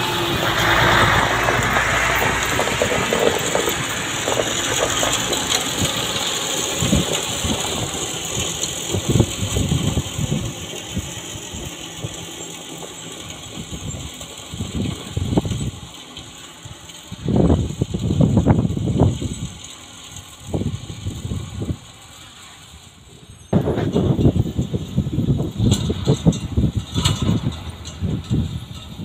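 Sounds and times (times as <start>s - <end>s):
low rumbles: 0.0s - 11.1s
truck engine driving away: 0.0s - 29.0s.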